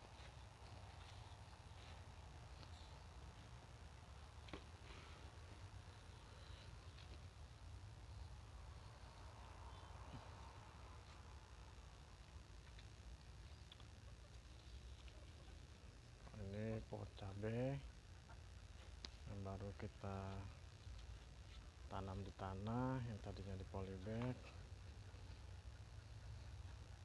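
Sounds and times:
faint low hum: 0.0 - 27.0.

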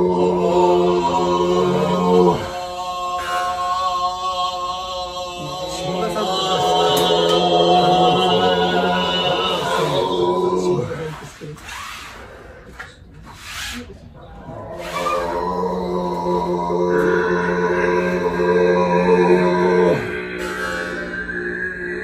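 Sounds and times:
low droning voice: 0.0 - 11.6, 14.0 - 22.0
high whistling overtone: 20.0 - 22.0.

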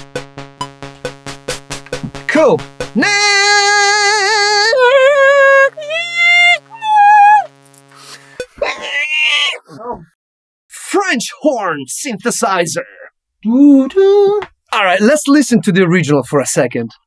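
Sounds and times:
synthesizer drone: 0.0 - 8.6
man singing with vibrato: 3.0 - 7.5.

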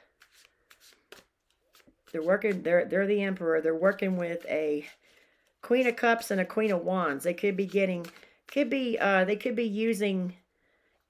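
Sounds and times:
cards flicking and rustling: 0.0 - 9.5.

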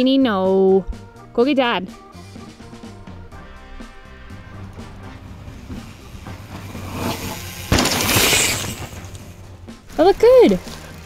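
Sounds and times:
background music: 0.0 - 11.0
tyres skidding on dirt: 2.2 - 11.0
bike landing thump: 5.6 - 9.4.

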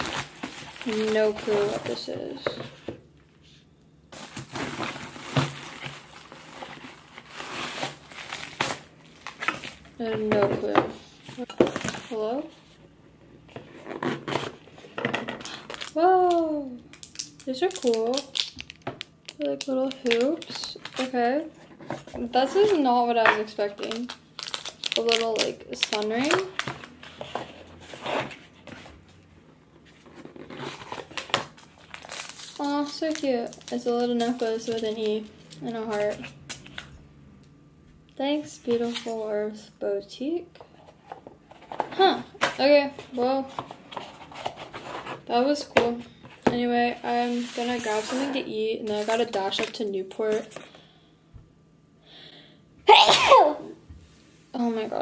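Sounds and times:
plastic and paper packaging rustling: 0.0 - 3.0, 4.1 - 12.8, 13.5 - 29.2, 29.8 - 36.9, 40.8 - 50.9.

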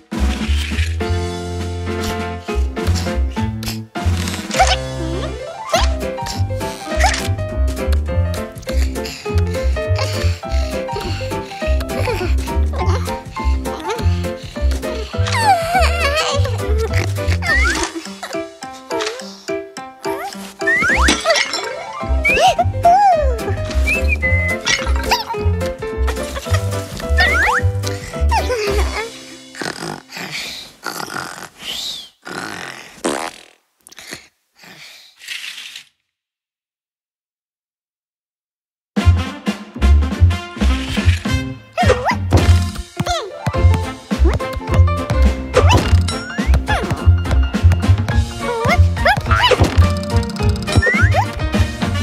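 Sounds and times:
upbeat cartoon music: 0.0 - 30.0, 39.0 - 52.0
cartoon sound effects: 4.5 - 6.0, 15.3 - 18.4, 20.0 - 25.4, 27.2 - 27.7, 45.5 - 47.0, 48.4 - 50.0, 50.7 - 51.4.

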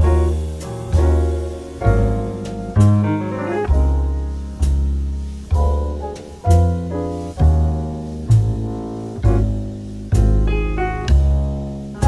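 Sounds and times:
jazz ballad on bass and piano: 0.0 - 12.0.

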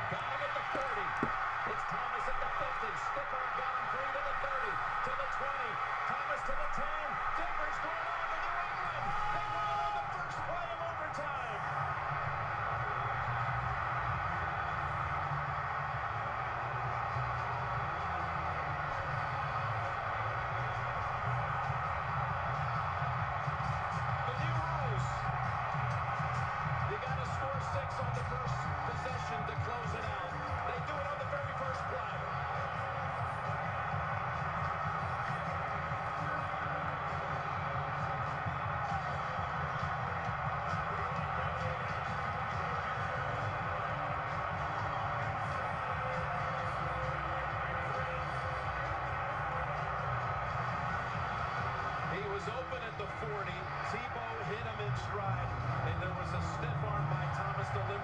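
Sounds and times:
music playing: 0.0 - 58.0
stadium crowd din: 0.0 - 58.0.

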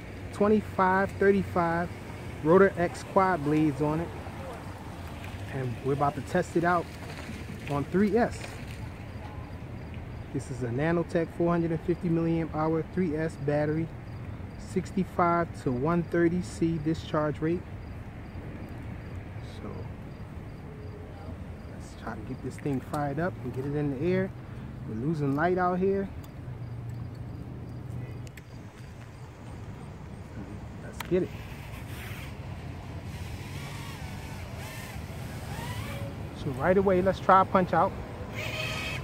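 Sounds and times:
distant voices: 0.0 - 39.0
quadcopter motors whining: 33.0 - 39.0.

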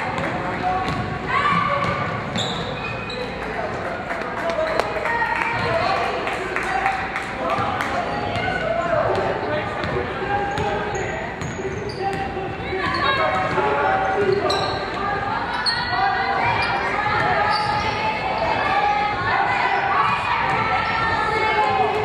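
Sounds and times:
shoe squeaks: 2.3 - 3.4, 10.5 - 18.6.

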